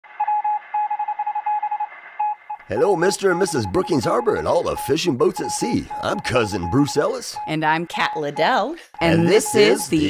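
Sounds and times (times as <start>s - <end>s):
morse code beeps: 0.2s - 10.0s.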